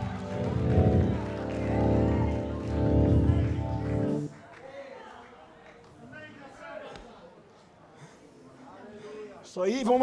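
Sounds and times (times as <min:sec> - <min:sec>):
band playing sustained chords: 0:00.0 - 0:04.3.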